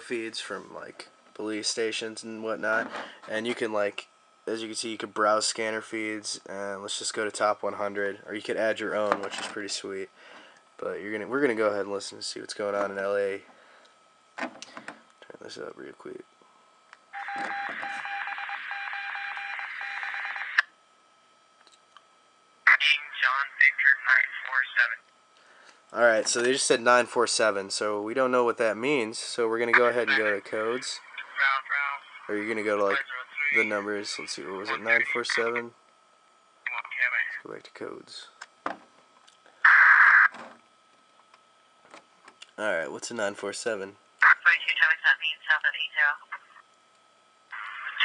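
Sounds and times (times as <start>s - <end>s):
radio noise: 17.2s - 20.6s, 22.7s - 25.0s, 29.6s - 35.8s, 36.7s - 37.5s, 39.6s - 40.5s, 44.2s - 46.6s, 47.6s - 48.0s
dispatcher voice over radio: 22.7s - 25.0s, 29.6s - 35.7s, 36.7s - 37.6s, 44.2s - 46.5s.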